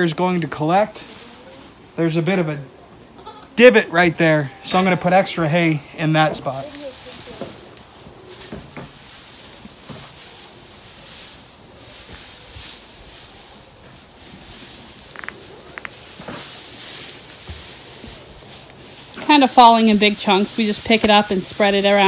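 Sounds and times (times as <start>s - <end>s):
dry hay rustling and crackling: 0.0s - 22.0s.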